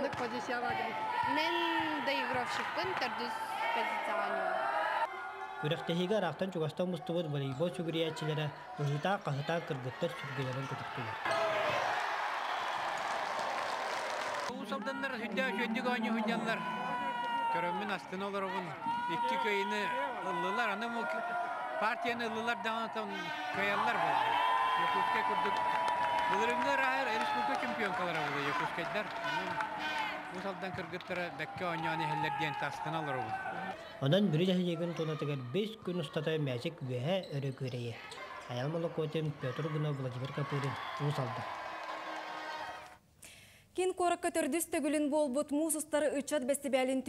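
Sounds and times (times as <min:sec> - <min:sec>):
crowd clapping and cheering: 0:00.0 - 0:05.8, 0:08.7 - 0:33.8, 0:39.2 - 0:43.0.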